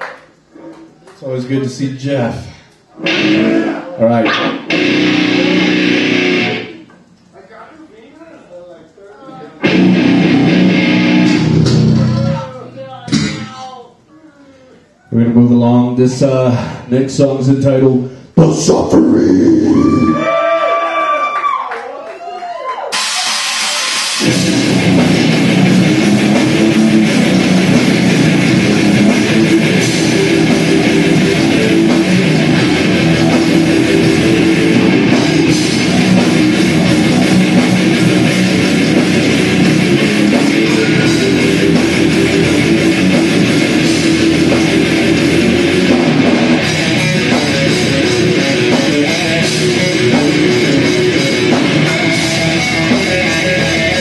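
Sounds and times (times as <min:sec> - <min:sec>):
guitar with swooping pitch bends: 0:03.0 - 0:06.8, 0:09.6 - 0:12.5, 0:23.2 - 0:54.0
drum kit: 0:03.0 - 0:07.0, 0:09.6 - 0:13.7, 0:22.9 - 0:54.0
distorted guitars: 0:03.0 - 0:07.2, 0:09.6 - 0:13.9, 0:22.9 - 0:54.0.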